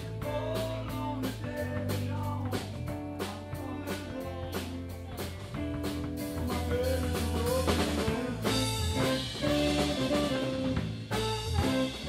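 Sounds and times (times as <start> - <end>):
bass guitar: 0.0 - 12.0
drum kit beat: 0.0 - 12.0
electric guitar: 0.0 - 12.0.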